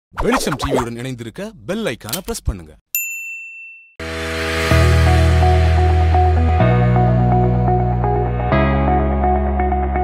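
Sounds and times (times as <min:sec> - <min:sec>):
bright bell ding: 0:02.9 - 0:04.0.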